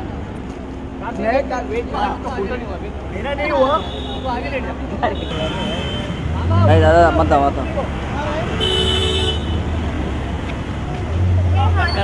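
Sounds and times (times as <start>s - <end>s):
engine rumble: 0.0s - 12.0s
two-tone car horn: 5.2s - 6.2s, 8.6s - 9.6s.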